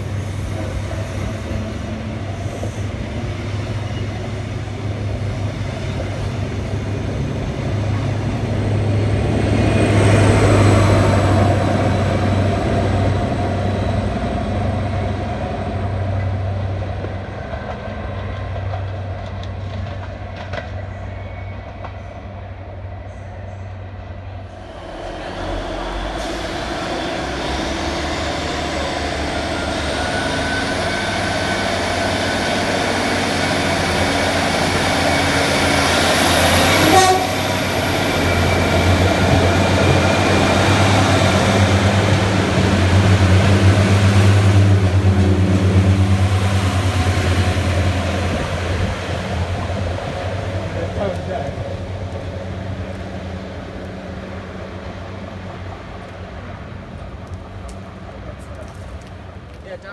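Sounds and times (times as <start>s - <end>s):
diesel train engine drone: 0.0s - 59.9s.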